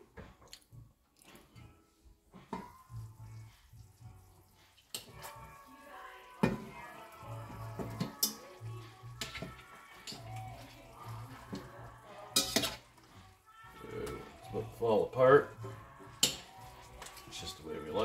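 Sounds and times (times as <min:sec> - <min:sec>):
chicken simmering in pan: 0:02.5 - 0:18.0
fork scraping pan: 0:09.1 - 0:13.1, 0:15.6 - 0:17.3.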